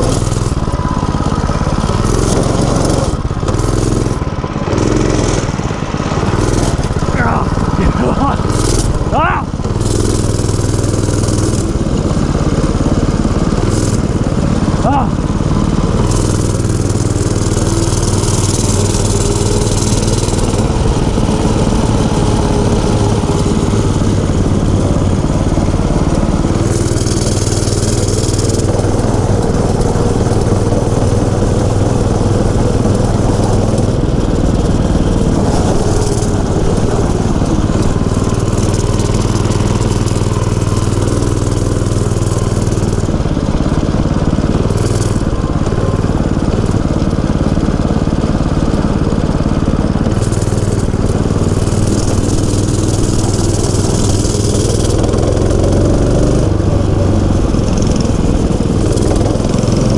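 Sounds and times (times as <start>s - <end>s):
small engine running: 0.0s - 59.9s.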